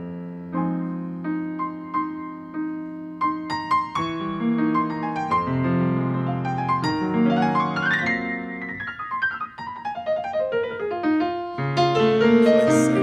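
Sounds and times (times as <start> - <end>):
solo grand piano: 0.0 - 13.0.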